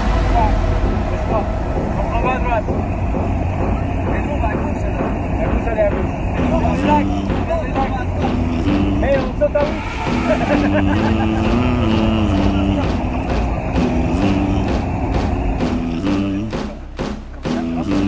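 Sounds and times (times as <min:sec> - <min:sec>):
plane engine and propeller drone: 0:00.0 - 0:16.7
people's voices: 0:00.0 - 0:18.0.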